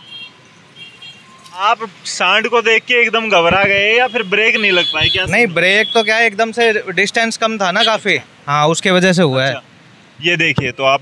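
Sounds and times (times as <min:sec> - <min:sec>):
faint road traffic: 0:00.0 - 0:11.0
man speaking: 0:01.5 - 0:09.6, 0:10.2 - 0:11.0.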